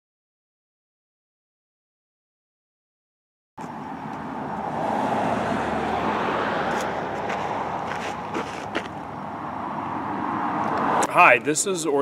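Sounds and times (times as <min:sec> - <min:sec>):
road traffic rushing: 0:03.6 - 0:12.0.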